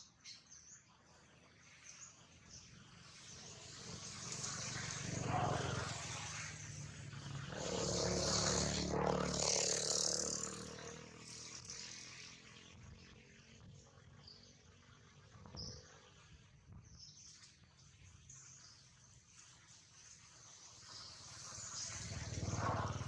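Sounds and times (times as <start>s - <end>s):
vehicle engine passing by: 3.0s - 13.3s, 20.8s - 23.0s.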